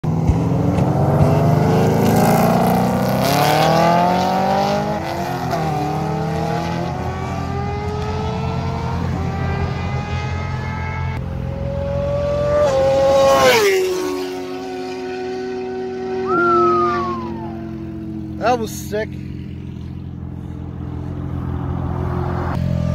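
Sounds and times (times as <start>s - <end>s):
sports car engine passing by: 0.1s - 22.9s.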